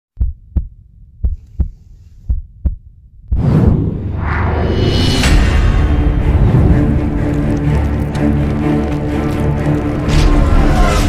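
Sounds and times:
heartbeat thumps: 0.2s - 3.5s.

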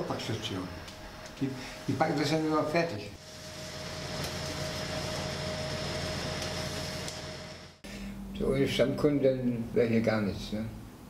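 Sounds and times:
bakery machine hum: 0.0s - 8.7s.

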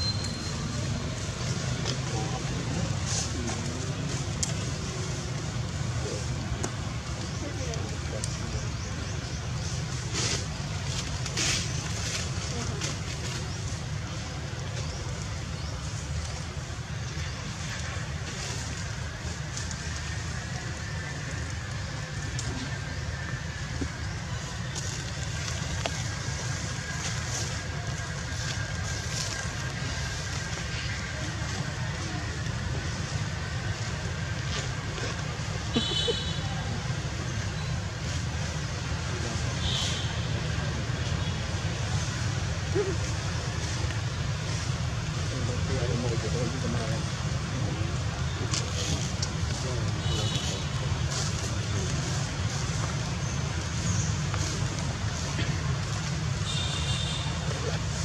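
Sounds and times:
faint voices: 0.0s - 58.0s.

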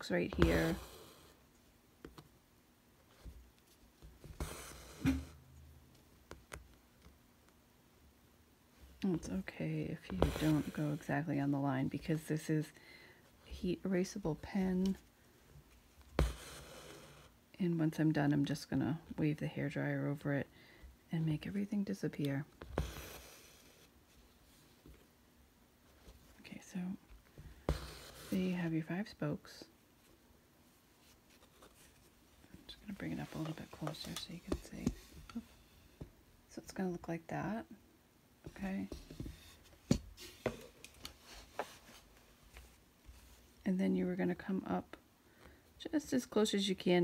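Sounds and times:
soft whispered voice: 26.3s - 27.0s.

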